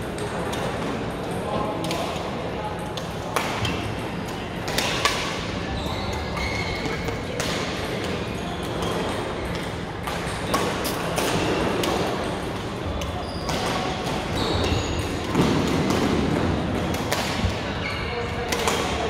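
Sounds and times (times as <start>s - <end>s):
background of play in hall: 0.0s - 19.0s
shoes squeaking on court: 5.5s - 15.4s.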